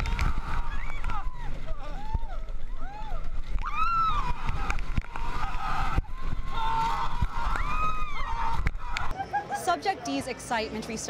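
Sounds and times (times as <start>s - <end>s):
riders screaming: 0.0s - 9.1s.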